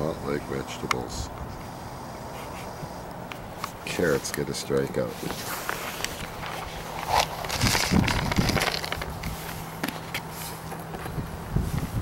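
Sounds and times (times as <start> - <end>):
footsteps crunching on gravel: 3.3 - 11.9.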